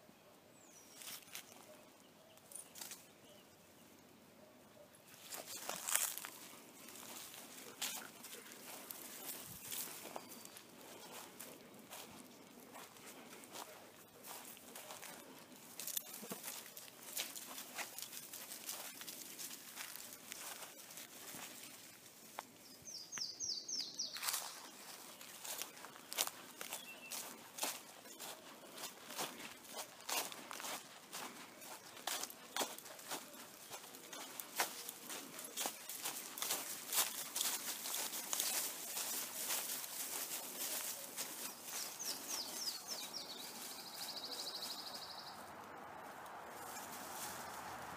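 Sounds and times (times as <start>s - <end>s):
footsteps crunching on dry leaves: 0.8s - 1.7s, 5.1s - 47.9s.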